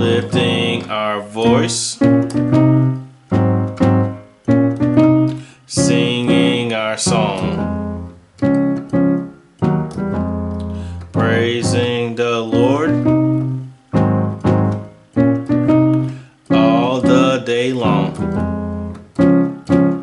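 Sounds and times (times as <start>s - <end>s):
man singing: 0.0s - 2.1s, 5.7s - 7.7s, 11.1s - 13.1s, 16.5s - 18.3s
digital keyboard playing chords: 0.0s - 20.0s.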